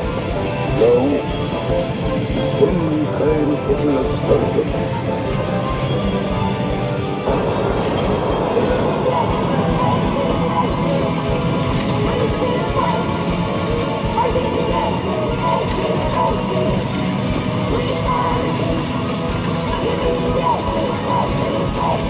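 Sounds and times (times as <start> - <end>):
arcade game music: 0.0 - 22.0.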